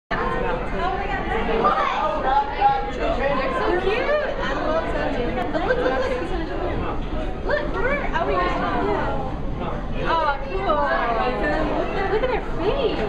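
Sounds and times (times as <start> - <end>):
indistinct chatter of people: 0.1 - 13.0.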